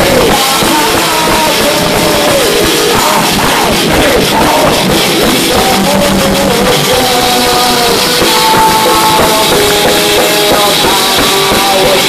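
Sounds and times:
distorted guitars: 0:00.0 - 0:12.0
drums: 0:00.0 - 0:12.0
person singing: 0:00.0 - 0:12.0.

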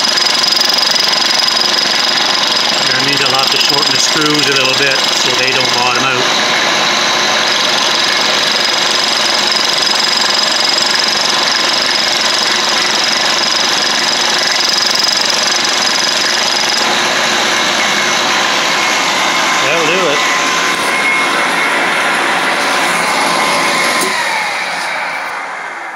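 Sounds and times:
machine winding down: 0:00.0 - 0:25.9
milling machine cutting with whine: 0:00.0 - 0:25.9.

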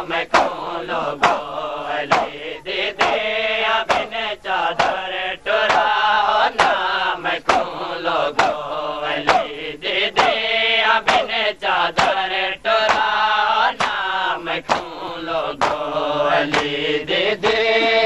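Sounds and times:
men chanting in unison: 0:00.0 - 0:18.0
hands slapping bare chests: 0:00.2 - 0:18.0.

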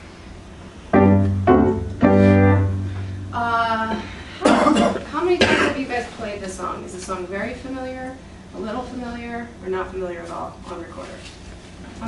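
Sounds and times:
held musical notes: 0:00.9 - 0:03.9.

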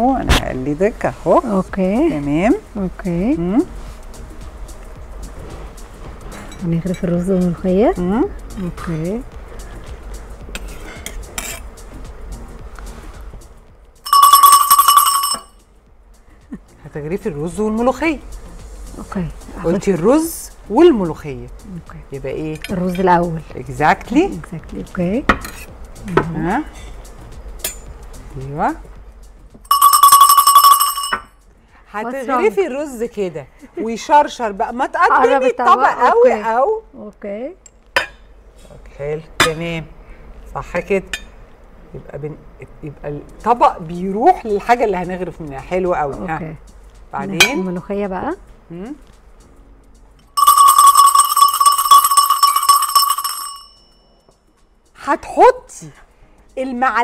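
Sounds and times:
bell ringing loudly: 0:14.1 - 0:15.6, 0:29.7 - 0:31.3, 0:50.3 - 0:54.2.

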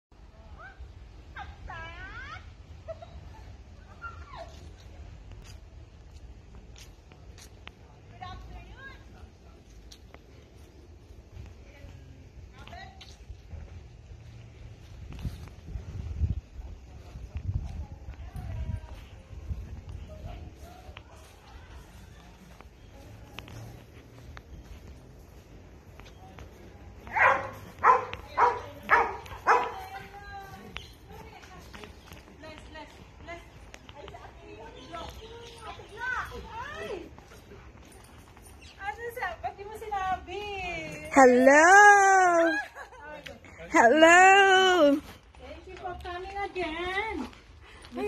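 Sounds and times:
dog barking: 0:27.0 - 0:29.9.

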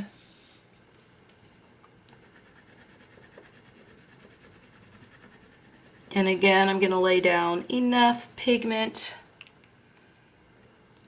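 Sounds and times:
crayon scratching on paper: 0:02.2 - 0:06.2.

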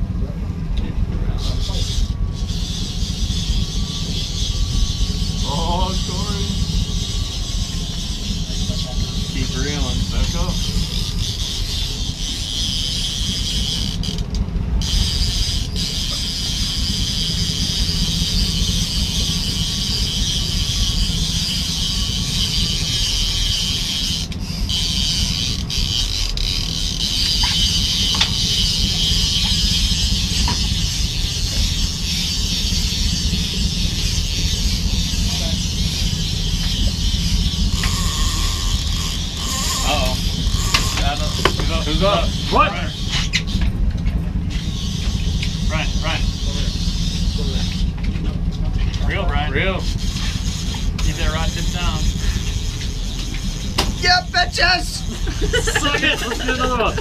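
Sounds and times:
boat engine running: 0:00.0 - 0:57.0
wind and water noise: 0:00.0 - 0:57.0
high-pitched wavering cries: 0:01.4 - 0:14.1, 0:14.8 - 0:41.4.

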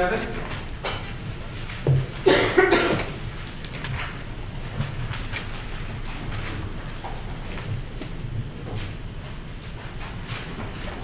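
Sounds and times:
person coughing: 0:02.2 - 0:03.2.

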